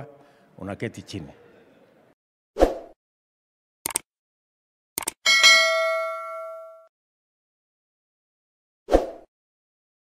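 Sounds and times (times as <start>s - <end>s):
notification bell ding: 5.3s - 6.9s.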